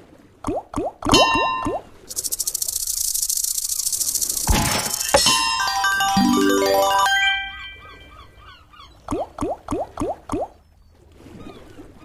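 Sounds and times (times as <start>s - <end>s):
slot reels rattling: 2.1s - 7.5s.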